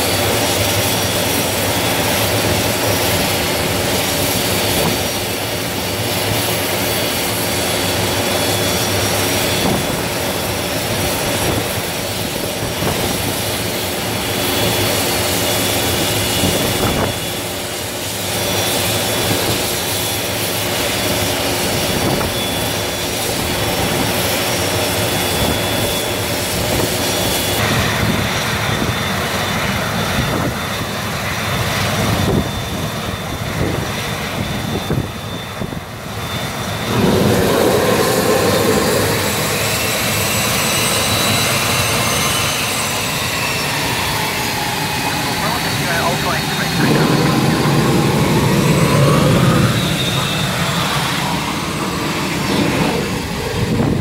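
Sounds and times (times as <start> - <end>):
jet engines idling: 0.0 - 54.0.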